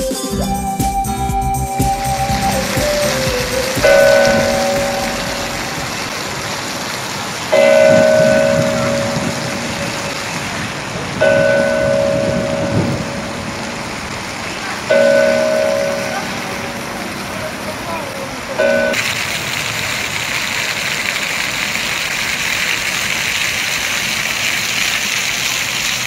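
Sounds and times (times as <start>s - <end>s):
large bell tolling: 3.8s - 5.8s, 7.6s - 9.9s, 11.2s - 13.6s, 14.9s - 17.1s.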